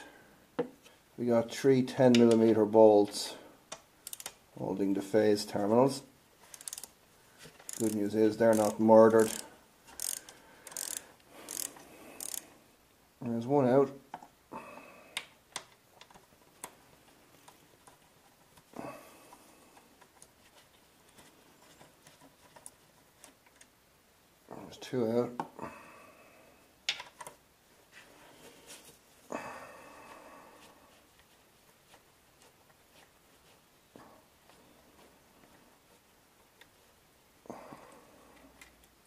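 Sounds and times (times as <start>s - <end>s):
ratchet wrench pawl clicking: 4.0s - 4.4s, 6.5s - 6.9s, 7.7s - 12.4s.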